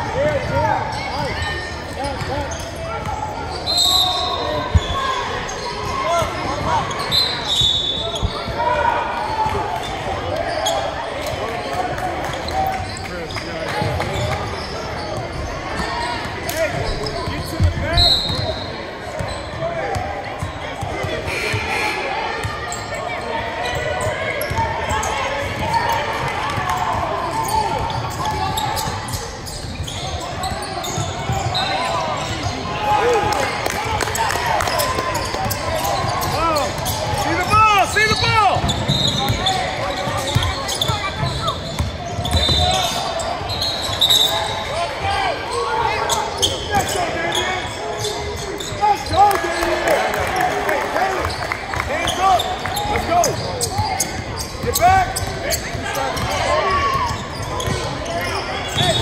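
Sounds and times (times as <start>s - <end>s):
shoe squeaks: 0.8s - 8.6s, 14.1s - 19.6s, 21.2s - 26.0s, 26.7s - 32.8s, 34.8s - 49.7s, 51.3s - 59.0s
basketball bouncing: 35.2s - 42.8s.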